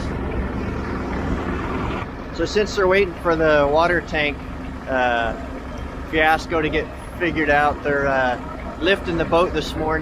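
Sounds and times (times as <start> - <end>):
low rumbling outdoor noise: 0.0 - 10.0.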